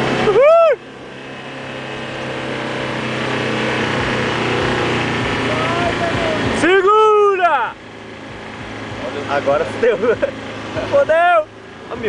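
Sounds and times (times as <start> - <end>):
pickup engine driving on sand: 0.0 - 12.0.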